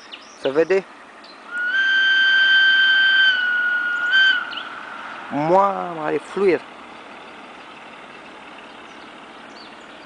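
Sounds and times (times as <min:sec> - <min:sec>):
locomotive whistle blast: 0:01.5 - 0:04.8.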